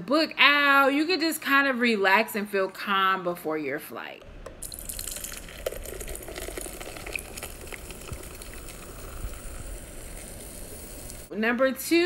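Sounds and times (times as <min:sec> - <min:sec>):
liquid fizzing and bubbling: 0:04.2 - 0:11.3.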